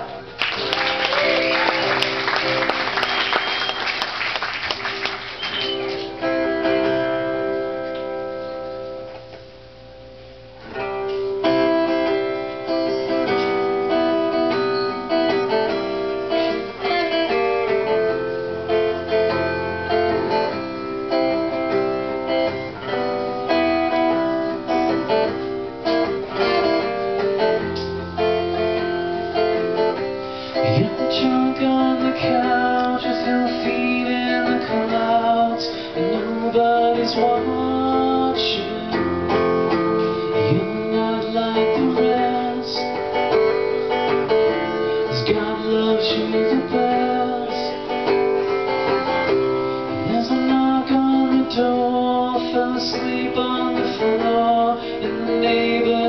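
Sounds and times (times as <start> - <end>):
acoustic guitar playing: 0.0 - 56.0
audience applause: 0.4 - 6.2.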